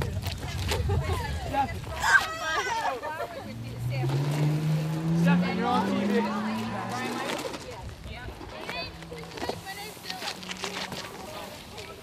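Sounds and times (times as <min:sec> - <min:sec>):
voices: 0:00.0 - 0:12.0
car engine humming: 0:03.1 - 0:12.0.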